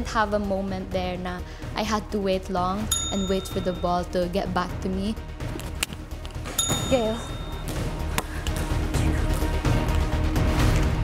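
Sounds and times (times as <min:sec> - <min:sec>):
background music with low beat: 0:02.2 - 0:11.0.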